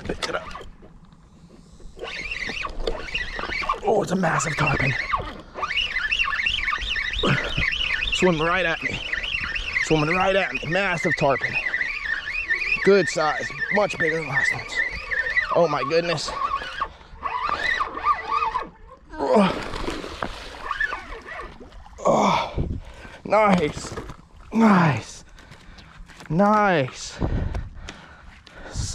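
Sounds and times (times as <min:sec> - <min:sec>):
fishing reel gears whining: 0:01.8 - 0:22.4
animal calling high notes: 0:02.0 - 0:19.6.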